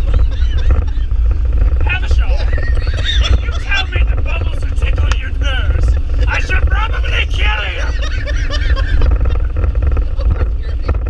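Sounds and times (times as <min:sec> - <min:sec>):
car engine low rumble: 0:00.0 - 0:11.0
men laughing loudly: 0:00.0 - 0:11.0.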